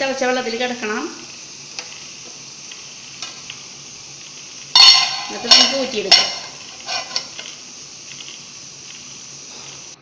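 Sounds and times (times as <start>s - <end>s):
water boiling in pot: 0.0s - 10.0s
glass pot lid clattering: 4.8s - 7.3s.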